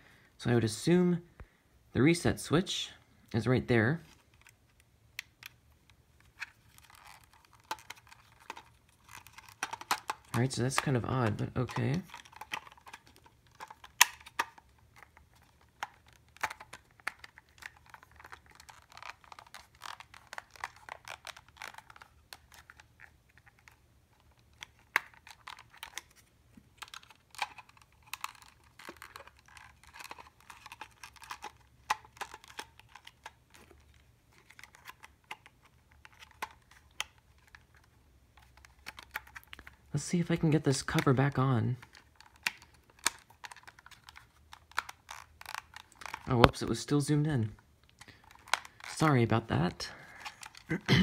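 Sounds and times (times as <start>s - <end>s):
fingers handling plastic tuner: 4.0s - 50.8s.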